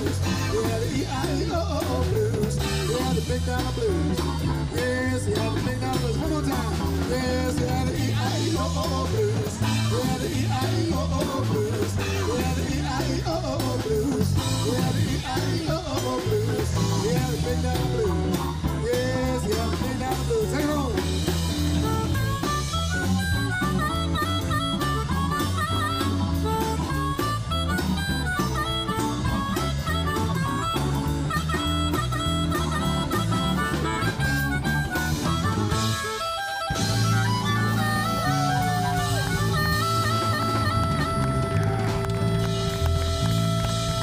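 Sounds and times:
amplified harmonica solo: 0.0s - 1.0s, 21.2s - 44.0s
blues band playing: 0.0s - 44.0s.

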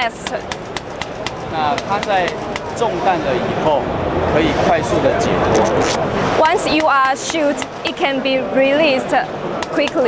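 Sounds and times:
background hubbub: 0.0s - 10.0s.

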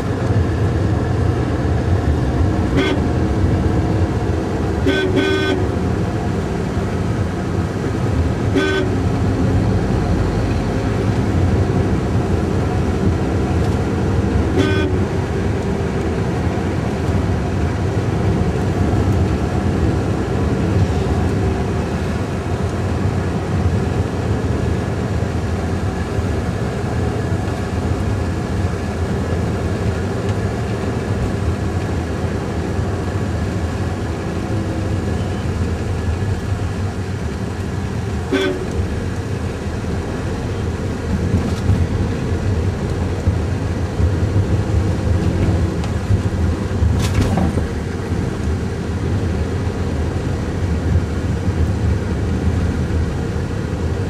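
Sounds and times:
car engine and road noise: 0.0s - 54.0s
car horn toot: 2.7s - 3.1s, 4.8s - 5.7s, 8.5s - 9.0s, 14.5s - 15.1s, 38.3s - 38.8s.

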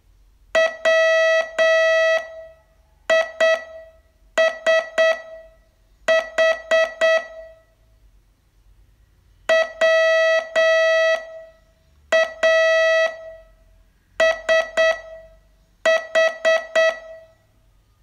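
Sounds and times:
morse code beeps: 3.1s - 5.4s, 6.1s - 7.6s, 12.1s - 13.4s, 14.2s - 15.3s, 15.9s - 17.3s.

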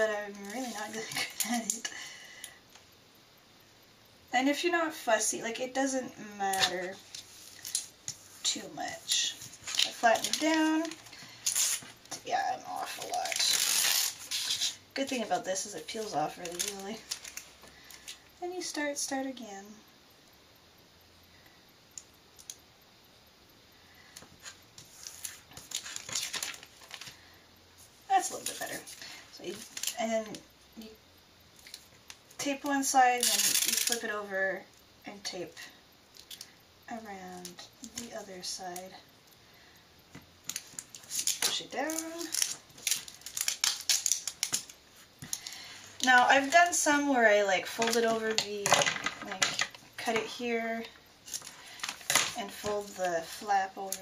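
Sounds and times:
plastic sheet crinkling: 6.5s - 17.5s, 24.4s - 27.2s, 40.5s - 50.4s, 51.2s - 54.0s.

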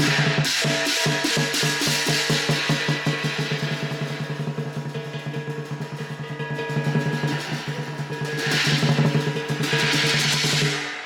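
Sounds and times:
bright cymbal wash: 0.0s - 11.0s
drum beaten fast: 0.0s - 11.0s.

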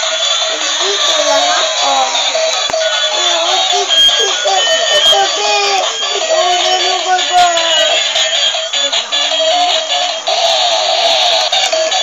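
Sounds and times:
toy bus electronic song: 0.0s - 12.0s.

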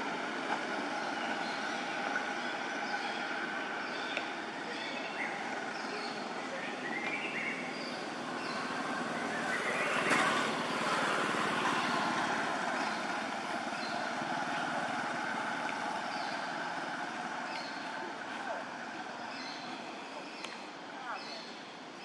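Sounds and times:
outdoor background rushing noise: 0.0s - 22.0s.

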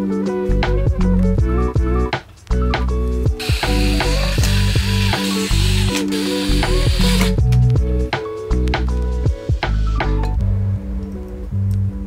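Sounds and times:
music with plucked notes: 0.0s - 12.0s
cordless drill driving a bolt: 3.4s - 7.4s.

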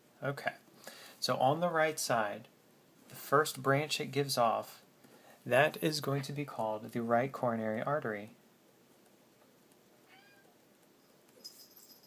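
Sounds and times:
cat meowing: 10.1s - 10.6s.

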